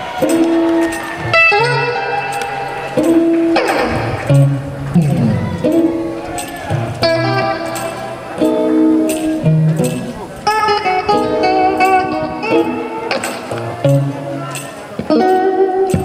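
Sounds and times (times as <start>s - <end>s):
blues electric guitar: 0.0s - 16.0s.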